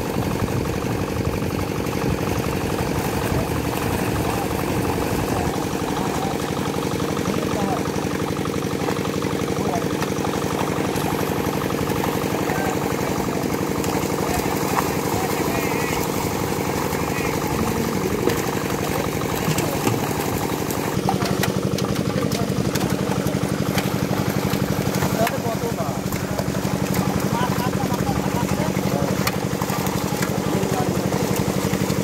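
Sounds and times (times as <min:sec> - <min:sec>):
small engine running: 0:00.0 - 0:32.0
water splashing from thrashing fish: 0:00.0 - 0:32.0.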